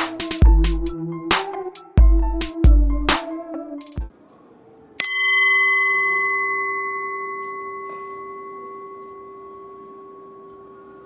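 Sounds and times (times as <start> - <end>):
boxing ring gong ringing: 5.0 - 11.0.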